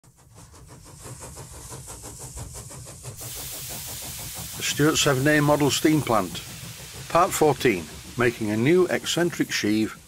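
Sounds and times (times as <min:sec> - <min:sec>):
steam engine beating: 0:00.0 - 0:10.0
steady hiss of steam: 0:00.2 - 0:10.0.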